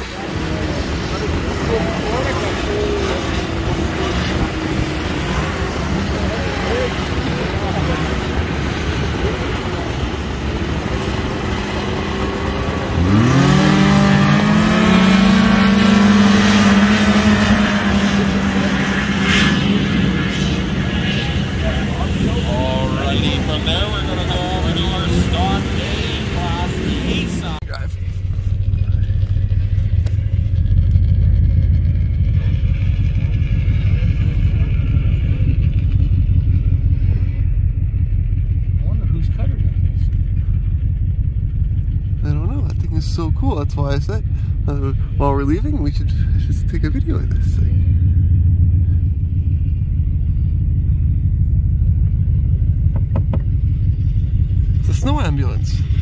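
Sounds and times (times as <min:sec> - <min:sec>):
snowmobile revving at high pitch: 0:00.0 - 0:27.6, 0:54.8 - 0:56.0
low steady rumble: 0:00.0 - 0:56.0
snowmobile engines running: 0:00.0 - 0:56.0.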